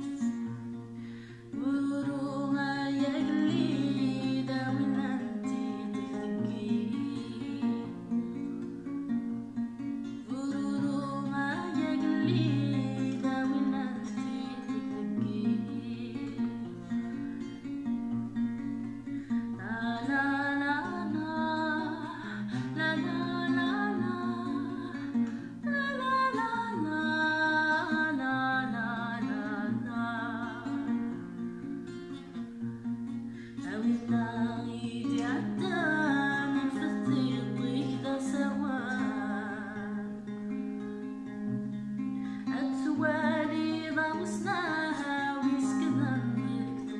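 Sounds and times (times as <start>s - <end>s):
woman singing: 0.0s - 8.8s, 9.8s - 32.6s, 33.3s - 41.4s, 42.0s - 46.9s
acoustic guitar: 0.0s - 46.9s.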